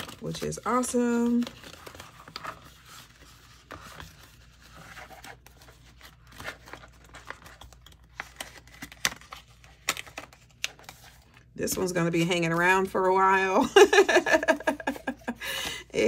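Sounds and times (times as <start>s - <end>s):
paper and cash rustling: 0.0s - 12.8s.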